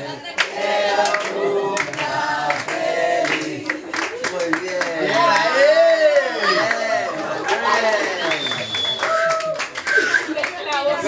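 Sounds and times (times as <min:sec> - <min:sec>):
overlapping voices: 0:00.0 - 0:11.0
hand claps: 0:00.4 - 0:05.5, 0:07.5 - 0:10.9.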